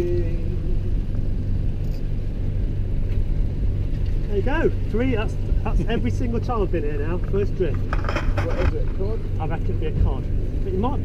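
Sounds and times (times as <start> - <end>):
boat engine running: 0.0 - 11.0.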